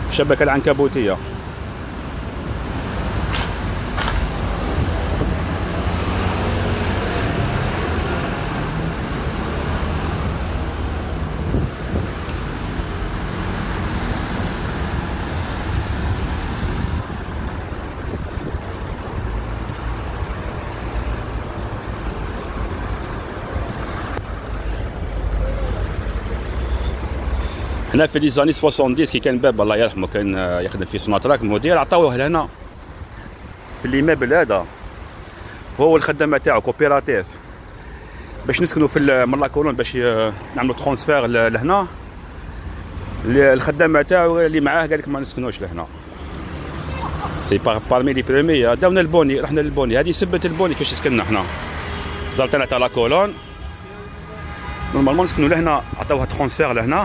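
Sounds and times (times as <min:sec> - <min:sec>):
cars driving past: 0:00.0 - 0:57.0.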